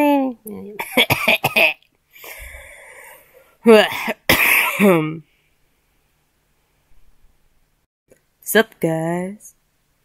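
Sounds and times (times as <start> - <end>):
person coughing: 0.8 - 1.8, 3.8 - 5.2
soft breathy noise: 2.1 - 3.6.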